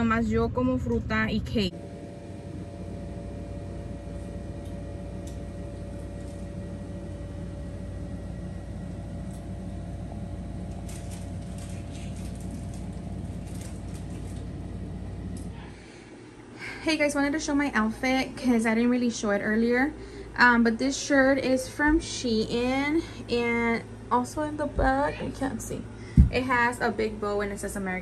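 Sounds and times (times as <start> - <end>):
low mechanical hum: 0.0 - 28.0.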